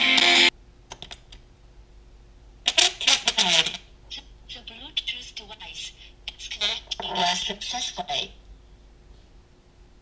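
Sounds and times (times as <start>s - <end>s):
guitar music through small speakers: 0.0s - 0.5s.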